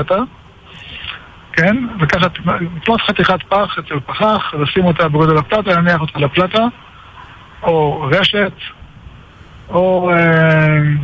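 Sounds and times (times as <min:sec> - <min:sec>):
man talking over telephone: 0:00.0 - 0:00.3, 0:00.9 - 0:06.8, 0:07.6 - 0:08.8, 0:09.7 - 0:11.0.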